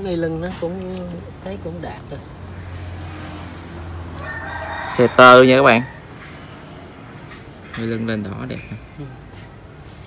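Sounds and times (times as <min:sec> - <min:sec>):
rooster crowing: 0:04.0 - 0:06.5.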